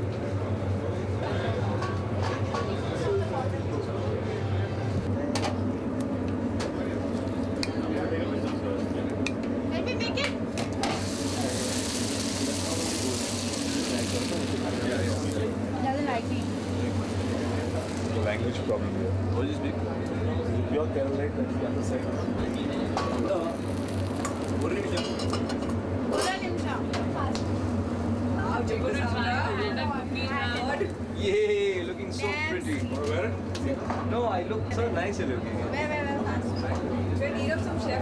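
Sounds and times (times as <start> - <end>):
steady low hum: 0.0 - 32.2
crowd chatter: 0.0 - 38.0
hot oil sizzling: 10.8 - 19.1, 22.6 - 25.7.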